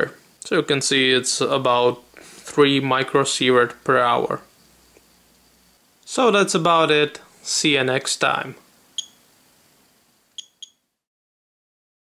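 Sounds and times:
geiger counter ticks: 0:10.4 - 0:10.8.

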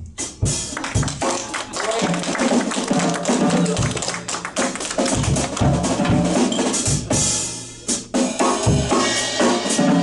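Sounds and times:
drum kit: 0:00.0 - 0:10.0
piano: 0:00.0 - 0:10.0
audience applause: 0:00.7 - 0:05.8
double bass: 0:05.1 - 0:08.0.

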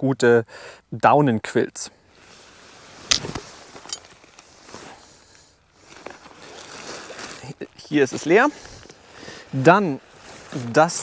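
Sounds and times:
nylon fabric rustling: 0:02.2 - 0:11.0
plastic bags crinkling: 0:03.1 - 0:05.0, 0:05.8 - 0:10.5.

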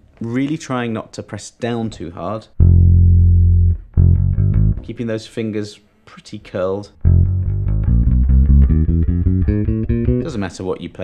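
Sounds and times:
electric bass low notes: 0:02.6 - 0:05.0, 0:07.0 - 0:10.6.

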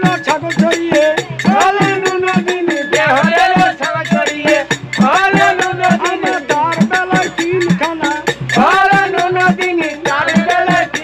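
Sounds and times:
barrel drum beat: 0:00.0 - 0:11.0
man singing folk song: 0:00.0 - 0:11.0.

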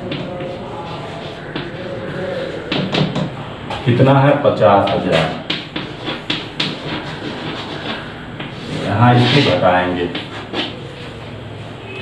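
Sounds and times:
chalk writing on a chalkboard: 0:00.0 - 0:03.3, 0:04.6 - 0:11.3.

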